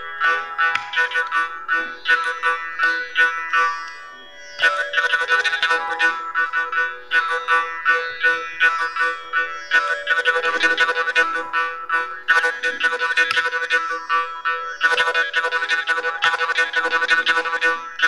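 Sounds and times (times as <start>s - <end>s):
violin melody: 0.0s - 18.0s.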